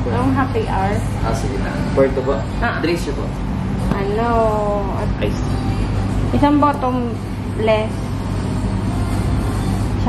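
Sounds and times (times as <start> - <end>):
restaurant room background noise: 0.0 - 10.0.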